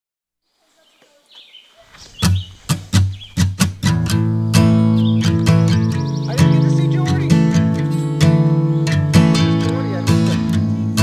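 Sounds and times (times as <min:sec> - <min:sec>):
high chirps: 0:00.8 - 0:03.6, 0:04.5 - 0:11.0
guitar strumming: 0:02.2 - 0:11.0.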